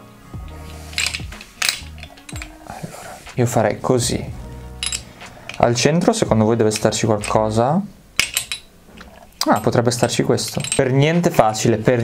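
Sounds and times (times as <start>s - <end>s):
background music: 0.0s - 12.0s
metal balls clicking together: 0.4s - 3.4s, 4.5s - 5.9s, 6.5s - 11.7s.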